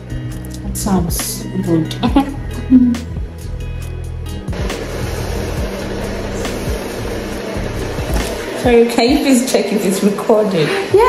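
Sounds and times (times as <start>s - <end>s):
background music: 0.0s - 11.0s
facial steamer hissing: 4.5s - 11.0s.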